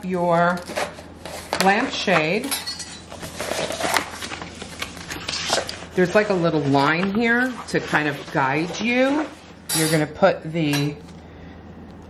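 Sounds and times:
sheet rustling and sliding: 3.1s - 9.6s.

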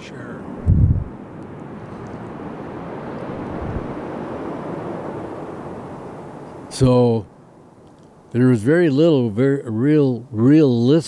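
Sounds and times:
aircraft passing overhead: 0.0s - 6.8s.

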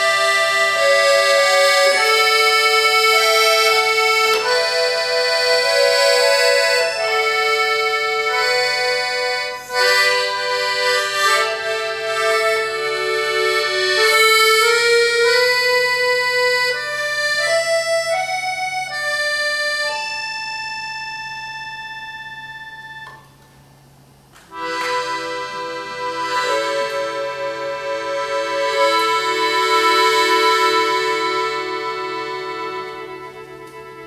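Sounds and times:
accordion playing: 0.0s - 23.5s, 24.5s - 34.0s.

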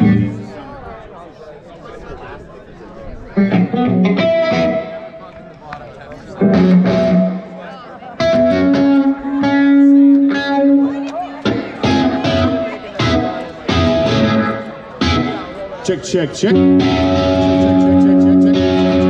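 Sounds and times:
electric guitar chords ringing: 0.0s - 0.5s, 3.4s - 5.2s, 6.4s - 19.0s.

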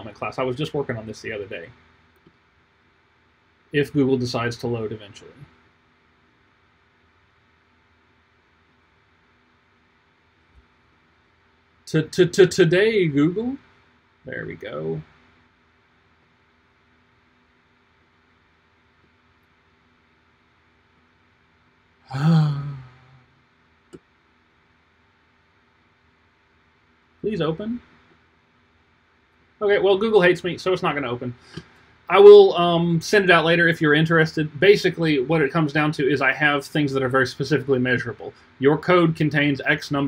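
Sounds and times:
man sighing: 22.1s - 23.2s.

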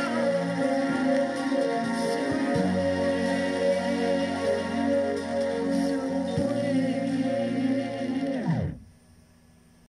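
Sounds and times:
pop ballad chord on vinyl record: 0.0s - 8.8s
faint record hiss: 0.0s - 9.9s
record slowing down in pitch: 0.0s - 9.9s.

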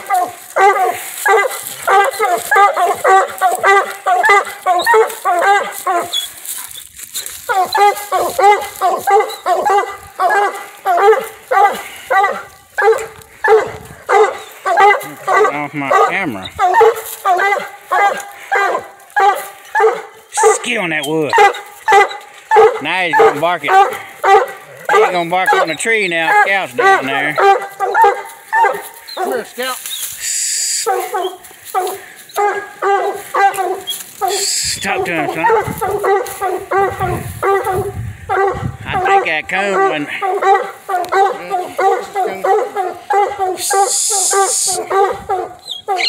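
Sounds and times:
dog barking: 0.0s - 6.2s, 7.5s - 29.5s, 30.8s - 34.4s, 35.0s - 46.0s.

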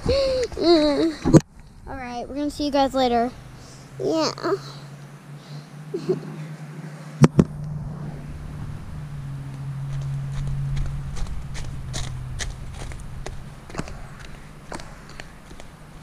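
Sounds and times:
steady low hum: 0.0s - 16.0s
footsteps crunching on gravel: 9.9s - 16.0s.

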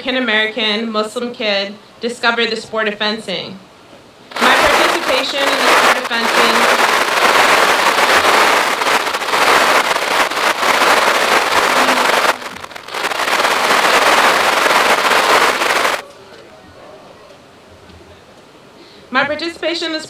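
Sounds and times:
audience applauding: 4.3s - 16.0s.

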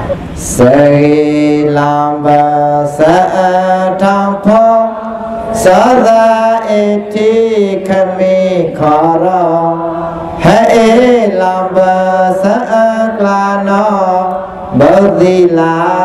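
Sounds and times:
person chanting: 0.0s - 16.0s
low drone note: 3.6s - 6.6s, 8.6s - 11.2s.

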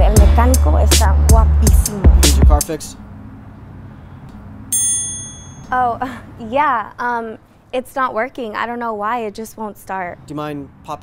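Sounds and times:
bright bell-like chime: 4.8s - 5.7s.

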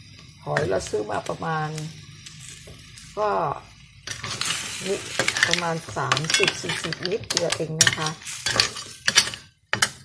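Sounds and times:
curry sizzling in a frying pan: 0.0s - 10.0s
metal spatula stirring in pan: 4.0s - 10.0s.

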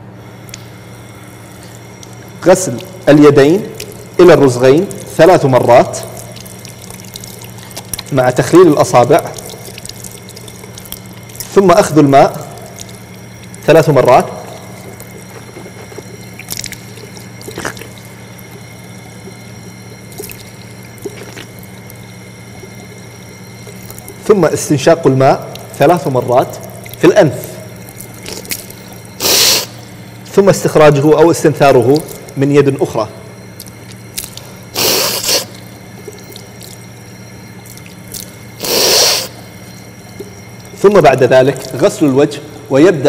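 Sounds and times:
water running from a faucet: 0.4s - 43.0s
water splashes: 1.6s - 33.0s, 33.6s - 39.4s, 40.1s - 42.3s
man snorting through nose: 29.2s - 29.7s, 34.8s - 35.5s, 38.6s - 39.3s.

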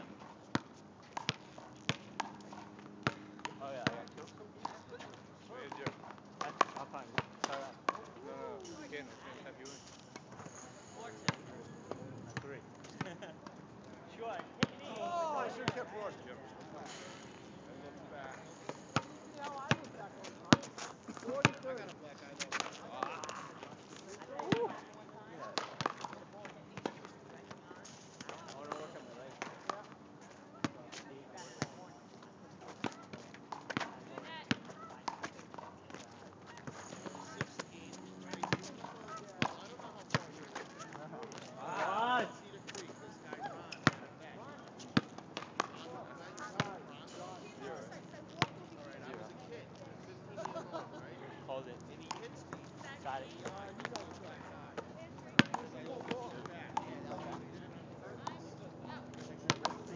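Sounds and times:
faint players' voices: 0.0s - 59.9s
basketball bouncing on asphalt: 0.5s - 4.8s, 5.8s - 8.1s, 18.7s - 19.9s, 21.3s - 21.6s, 25.6s - 27.6s, 32.8s - 36.0s, 36.6s - 40.9s, 43.8s - 44.0s, 45.0s - 45.8s, 54.7s - 55.6s
voices calling out: 14.3s - 21.6s, 35.8s - 44.0s.

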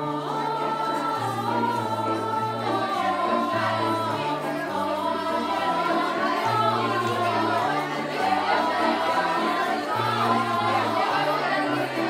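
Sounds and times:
youth choir singing folk song: 0.0s - 12.0s.

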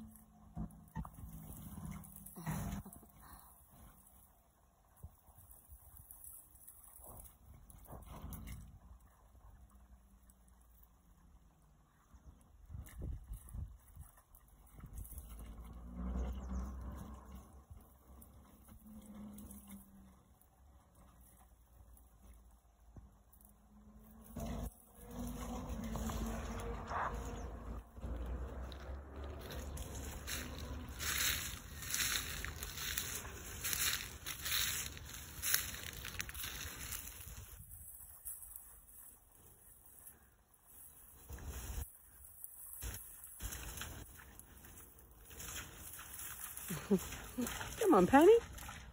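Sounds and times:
dog wading through reeds: 0.0s - 48.9s
wind rumbling on microphone: 12.2s - 17.8s, 24.4s - 38.2s.

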